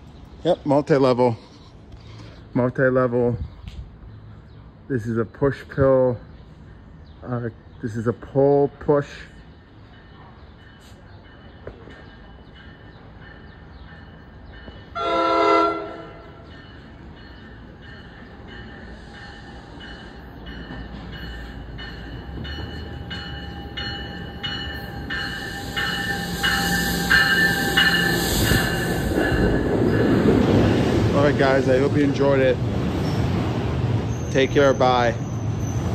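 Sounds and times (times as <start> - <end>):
train rumbling: 0.0 - 35.9
train horn blast: 15.0 - 16.3.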